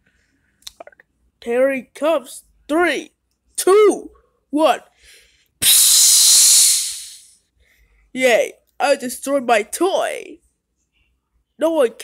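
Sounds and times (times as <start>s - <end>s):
explosion hissing rush: 5.6s - 7.3s.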